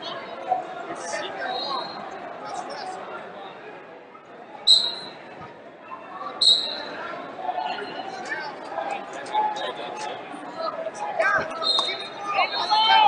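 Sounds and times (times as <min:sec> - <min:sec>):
voices and hall chatter: 0:00.0 - 0:13.0
referee's whistle blasts: 0:04.7 - 0:05.2, 0:06.4 - 0:06.9, 0:11.5 - 0:13.0.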